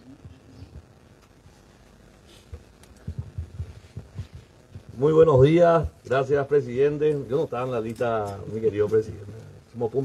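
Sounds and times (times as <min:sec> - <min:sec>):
microphone handling thumps: 0:02.5 - 0:06.0.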